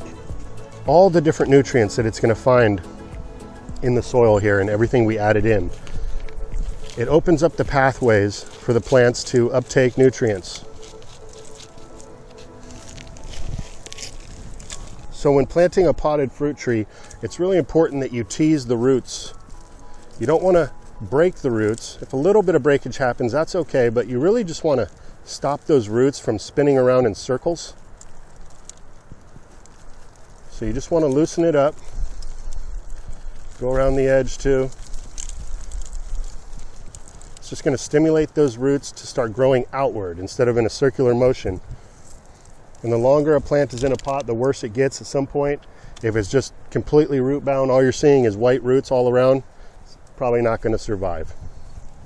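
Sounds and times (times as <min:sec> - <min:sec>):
steady low rumble: 0:00.0 - 0:25.9, 0:27.3 - 0:38.6
faint steady tones: 0:00.0 - 0:52.0
soil and roots crackling: 0:00.0 - 0:52.0.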